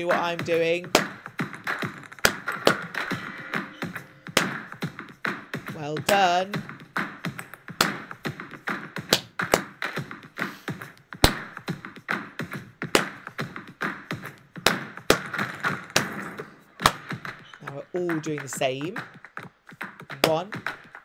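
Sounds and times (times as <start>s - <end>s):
rhythmic hand claps and taps: 0.0s - 21.0s.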